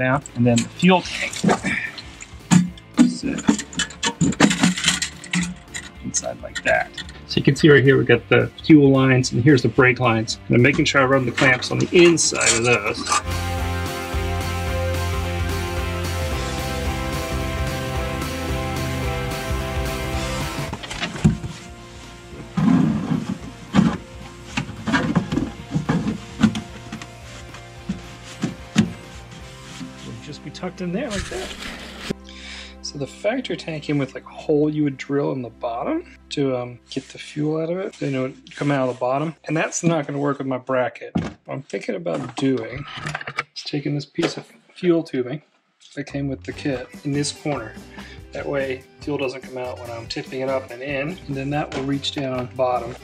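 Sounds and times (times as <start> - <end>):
background music: 0.0 - 40.2, 46.0 - 53.0.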